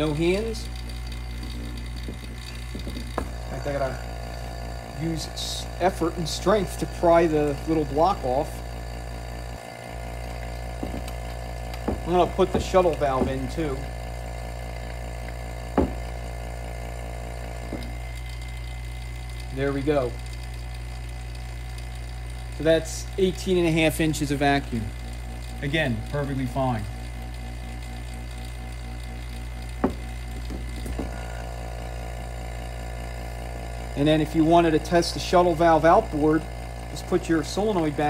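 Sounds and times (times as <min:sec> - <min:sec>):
vacuum pump running: 0:00.0 - 0:38.0.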